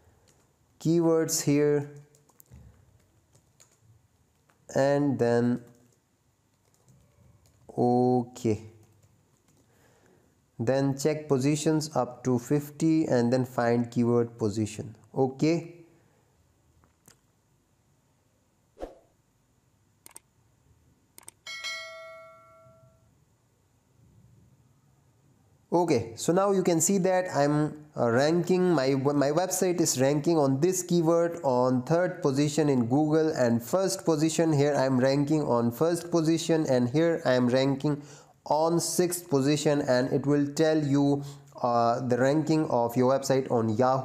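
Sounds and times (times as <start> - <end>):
keyboard typing: 0.2 - 0.6, 1.8 - 4.7, 5.5 - 7.8, 8.7 - 9.7, 20.0 - 20.3, 21.2 - 21.4
short clicks: 20.0 - 20.3, 21.2 - 21.4
bell-like chime: 21.4 - 23.1.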